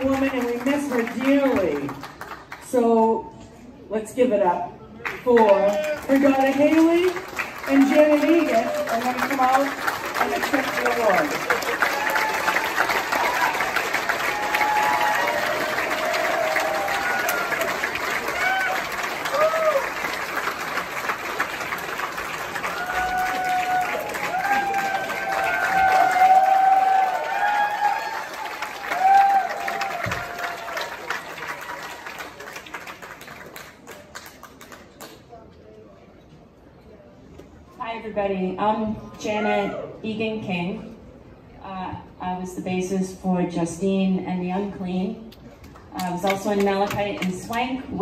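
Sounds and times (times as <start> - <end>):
audience applauding: 5.0 - 35.2.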